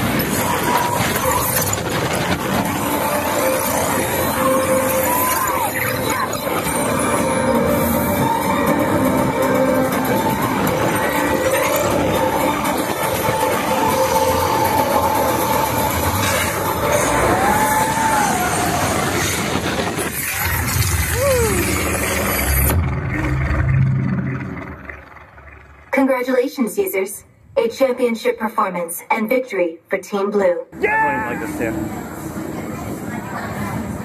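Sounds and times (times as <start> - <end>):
soundtrack music: 0.0 - 26.0
roller coaster train on track: 0.0 - 26.9, 30.8 - 34.0.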